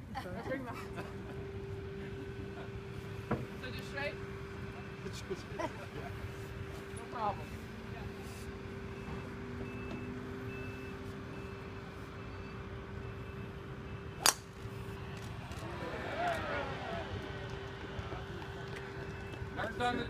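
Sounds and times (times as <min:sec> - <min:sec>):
steady low hum: 0:00.0 - 0:20.0
golf club striking ball: 0:14.2 - 0:14.7
onlookers' voices: 0:15.4 - 0:20.0.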